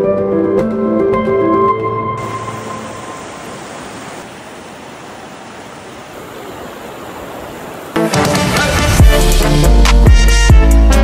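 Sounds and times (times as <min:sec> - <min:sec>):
background music: 0:00.0 - 0:03.2, 0:08.0 - 0:11.0
mountain stream rushing: 0:02.2 - 0:09.7
loud music with heavy bass: 0:08.8 - 0:11.0.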